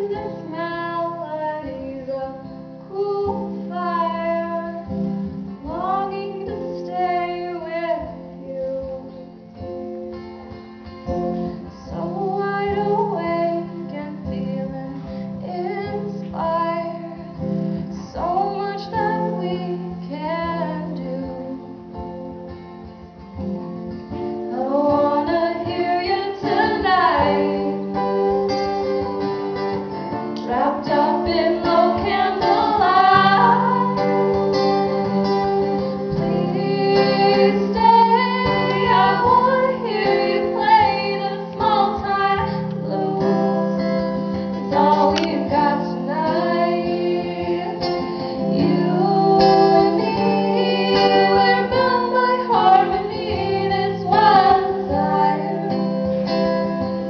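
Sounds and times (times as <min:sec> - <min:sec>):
woman singing blues: 0:00.0 - 0:10.0, 0:11.1 - 0:22.6, 0:24.3 - 0:28.4, 0:30.1 - 0:57.0
strummed acoustic guitars: 0:00.0 - 0:57.0.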